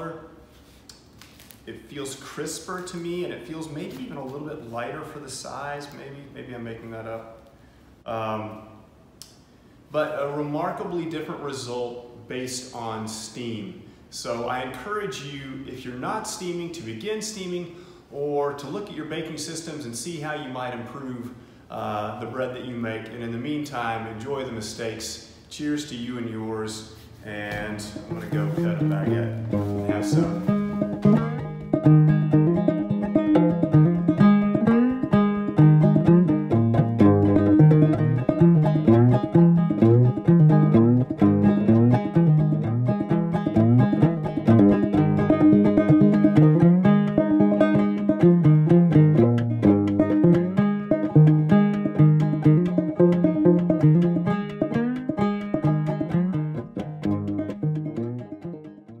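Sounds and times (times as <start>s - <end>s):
plucked-string tune: 26.9s - 59.0s.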